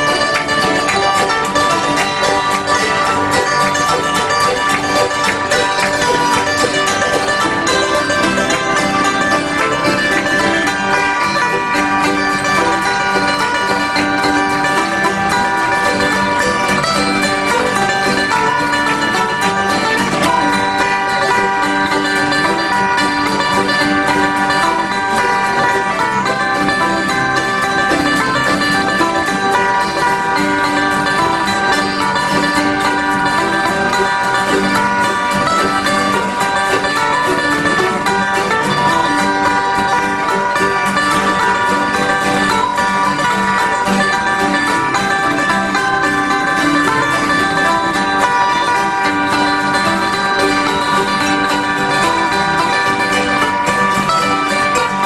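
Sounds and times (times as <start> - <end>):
acoustic bluegrass band playing: 0.0 - 55.0.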